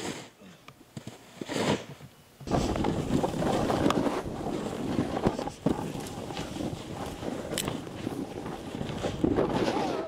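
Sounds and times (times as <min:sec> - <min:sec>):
snowboard scraping over snow: 0:01.4 - 0:10.0
wind buffeting microphone: 0:02.5 - 0:10.0.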